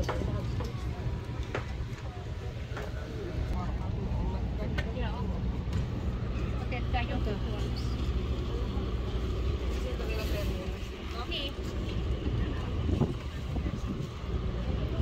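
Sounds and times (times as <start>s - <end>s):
steady low rumble: 0.0s - 15.0s
voices of people: 0.0s - 15.0s.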